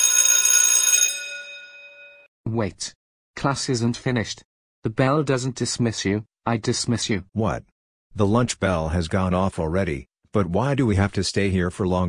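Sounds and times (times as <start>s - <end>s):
electric school bell ringing: 0.0s - 2.3s.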